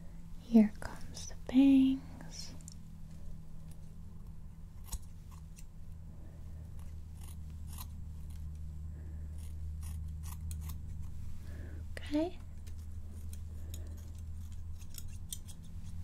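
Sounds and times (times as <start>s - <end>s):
scissors snipping hair: 4.8s - 5.7s, 6.8s - 8.6s, 9.3s - 11.1s, 12.5s - 16.0s.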